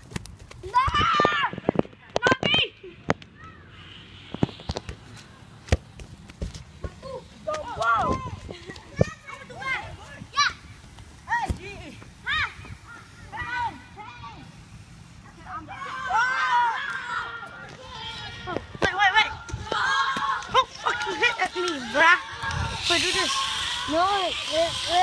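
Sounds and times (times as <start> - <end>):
children shouting: 0.7 - 1.6, 15.4 - 25.0.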